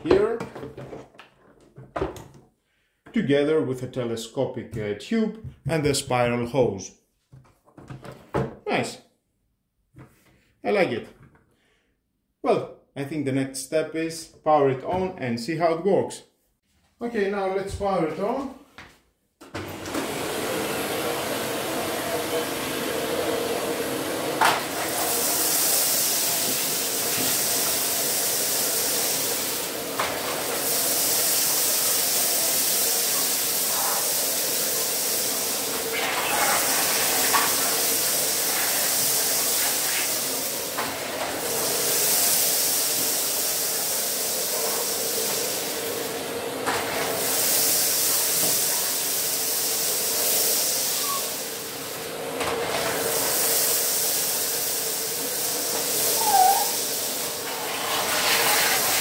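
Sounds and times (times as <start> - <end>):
vacuum cleaner running: 19.4 - 59.0
vacuum nozzle hissing on tiles: 19.9 - 59.0.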